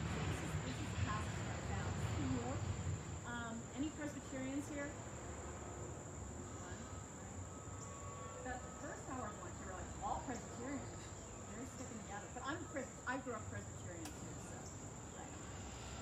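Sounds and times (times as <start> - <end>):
high-pitched insect chorus: 0.0 - 16.0
faint voices: 6.4 - 16.0.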